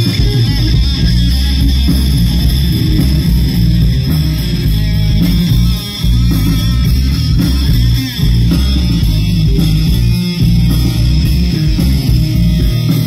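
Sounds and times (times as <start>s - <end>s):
punk rock band playing: 0.0s - 13.0s.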